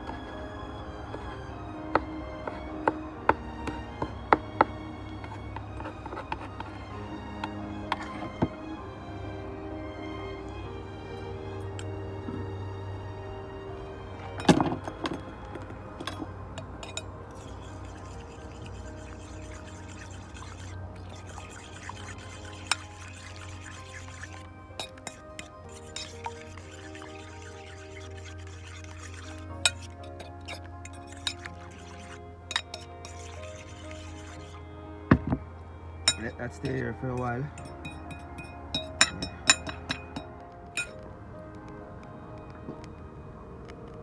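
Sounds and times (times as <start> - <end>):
background music: 0.0 - 44.0.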